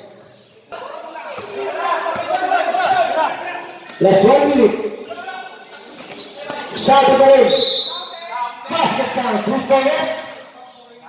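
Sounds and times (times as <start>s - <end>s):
people shouting: 0.7s - 5.6s
basketball bouncing on court floor: 1.3s - 3.0s.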